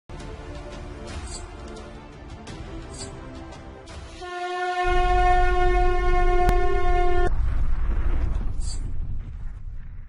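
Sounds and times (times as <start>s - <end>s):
loud steady horn blast: 4.1s - 7.3s
deep low rumble: 5.8s - 10.0s.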